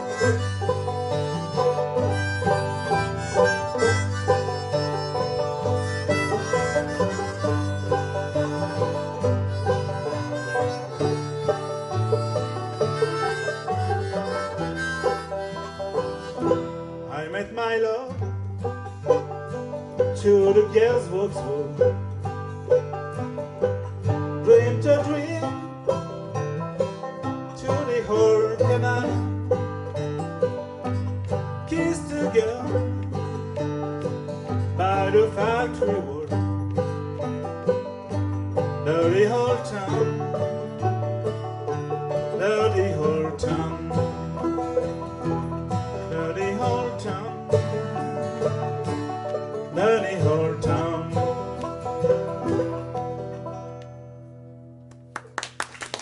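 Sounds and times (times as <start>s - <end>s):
pitch-bending lead melody: 0.0s - 17.1s
banjos picking: 0.0s - 55.4s
acoustic guitar playing: 0.0s - 56.0s.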